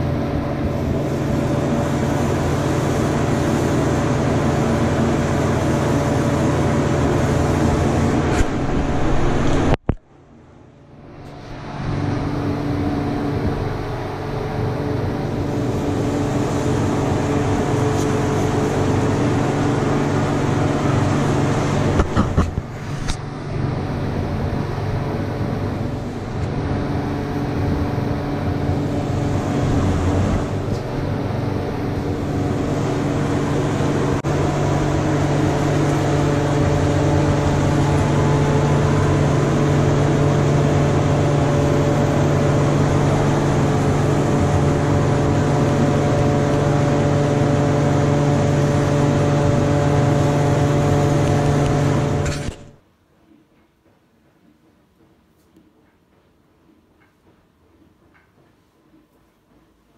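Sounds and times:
rushing air noise: 0.0 - 52.6
machinery humming: 0.0 - 52.8.

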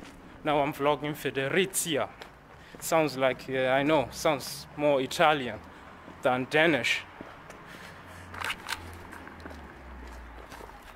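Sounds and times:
camera handling scuffs: 8.3 - 10.9.

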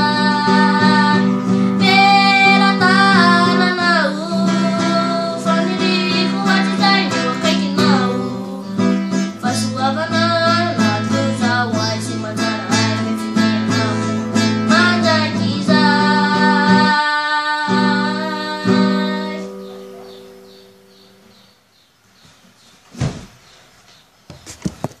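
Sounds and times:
acoustic guitar playing: 0.0 - 21.8.

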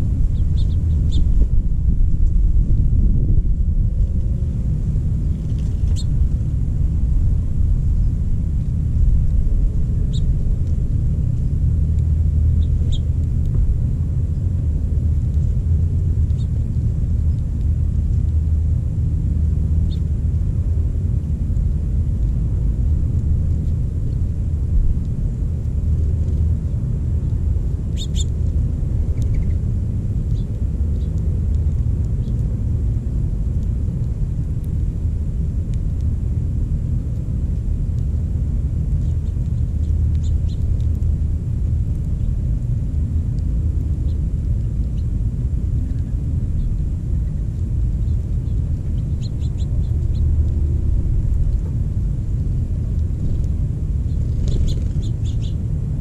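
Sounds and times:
low outdoor rumble: 0.0 - 56.0
bird chirping: 0.3 - 1.3, 5.8 - 6.1, 10.0 - 10.3, 12.6 - 13.1, 27.9 - 28.3, 29.2 - 29.6, 48.0 - 50.3, 54.1 - 55.6.

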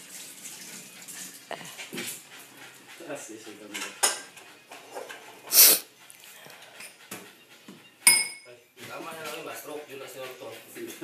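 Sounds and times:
dogs barking excitedly: 1.0 - 8.0
metallic clink: 8.0 - 8.5.

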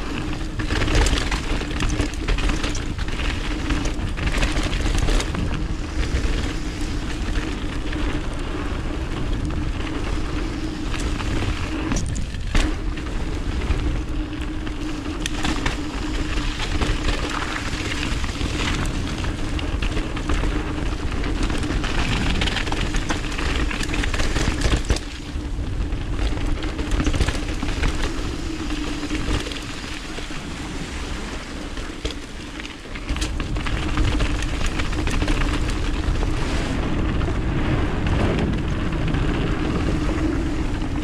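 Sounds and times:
bike clicking and rattling: 0.0 - 41.0
bike tyres rolling on gravel: 0.0 - 41.0
wind rumble on microphone: 0.0 - 41.0.

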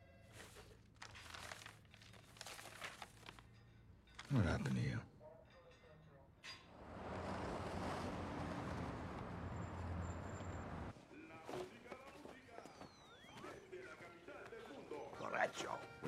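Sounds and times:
vehicle engine rumble: 6.6 - 10.9.

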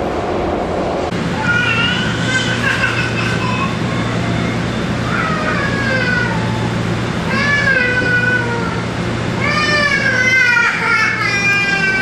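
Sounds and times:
rail car low hum: 0.0 - 12.0.

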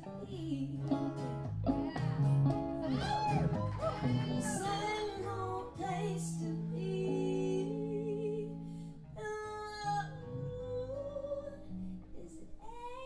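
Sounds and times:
women singing: 0.0 - 1.2, 1.8 - 13.0
electric and acoustic guitars: 0.0 - 13.0.

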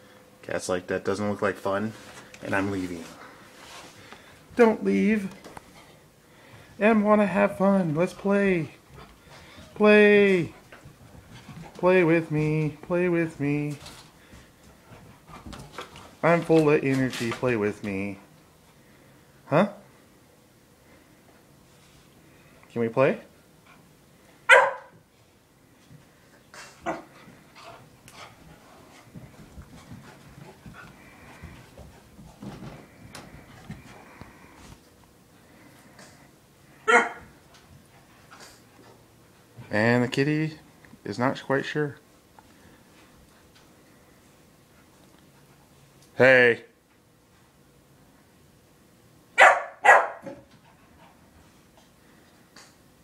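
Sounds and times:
puppy barking: 24.5 - 25.0, 36.8 - 37.2, 49.4 - 50.4.

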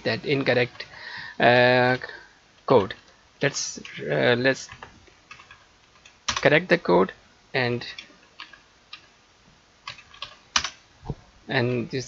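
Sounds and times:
keyboard keystrokes: 9.9 - 10.8.

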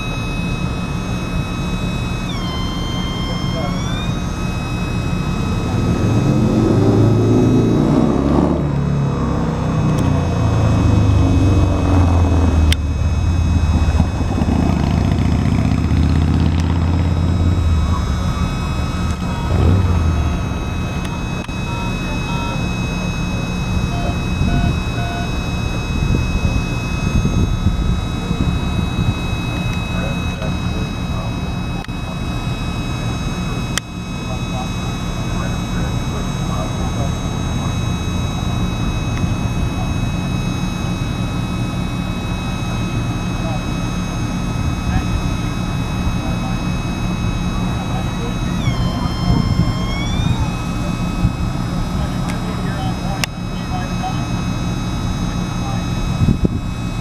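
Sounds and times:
high whine or squeal: 0.0 - 57.0.

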